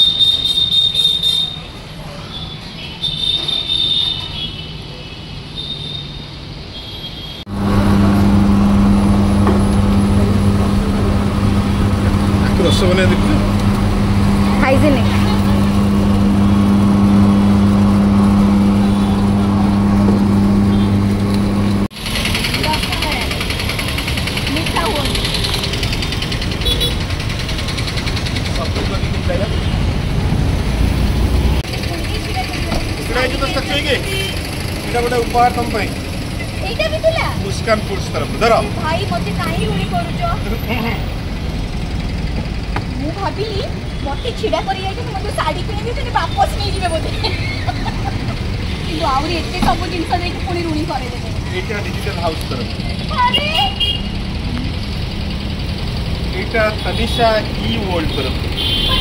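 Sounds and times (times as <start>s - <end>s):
street traffic: 0.0s - 59.0s
voices: 7.5s - 30.3s, 31.6s - 59.0s
sugarcane juice machine humming: 7.5s - 59.0s.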